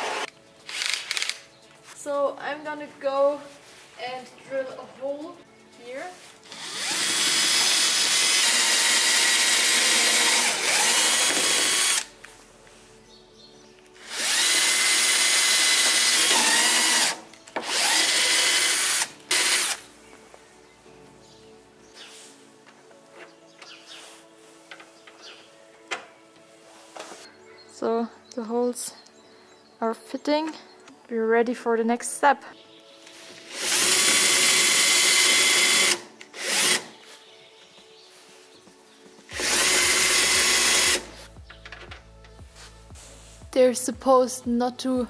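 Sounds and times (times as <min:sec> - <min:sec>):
faint background music: 0:00.0 - 0:45.0
power drill boring: 0:06.5 - 0:12.1, 0:14.0 - 0:19.8, 0:33.5 - 0:36.9, 0:39.4 - 0:41.1.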